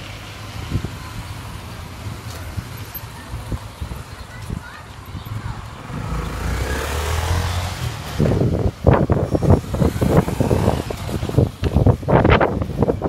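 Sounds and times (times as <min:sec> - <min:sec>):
motorcycle engine: 0:00.0 - 0:13.0.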